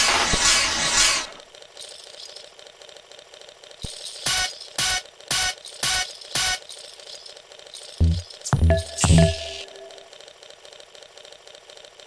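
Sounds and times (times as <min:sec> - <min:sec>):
regular electronic clicks: 0:03.8 - 0:10.2
dense noisy electronic texture: 0:08.0 - 0:10.2.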